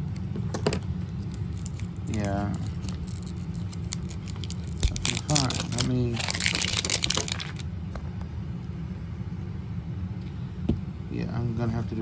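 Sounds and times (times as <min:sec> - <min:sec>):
steady low hum: 0:00.0 - 0:12.0
plastic shrink wrap crinkling: 0:01.1 - 0:07.6.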